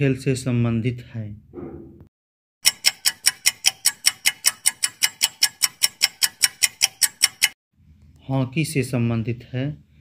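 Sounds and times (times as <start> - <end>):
rapid clock ticking: 2.6 - 7.6.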